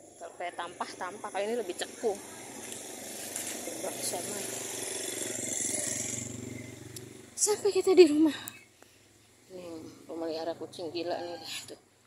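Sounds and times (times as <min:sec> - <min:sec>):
small motorcycle engine running: 0:00.0 - 0:11.5.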